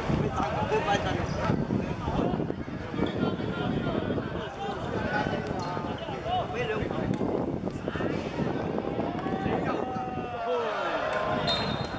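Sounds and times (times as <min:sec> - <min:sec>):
players shouting: 0:08.9 - 0:11.9.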